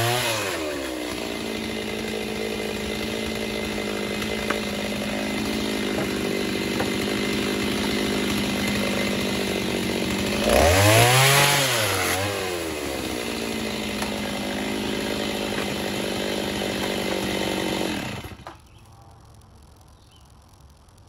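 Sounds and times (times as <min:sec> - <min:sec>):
chainsaw idling and revving: 0:00.0 - 0:18.7.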